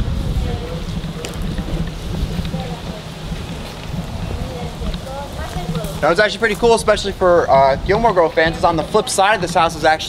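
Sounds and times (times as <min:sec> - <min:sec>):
footsteps on gravel: 0:00.0 - 0:07.0
faint people talking: 0:00.0 - 0:10.0
wind buffeting microphone: 0:00.0 - 0:10.0.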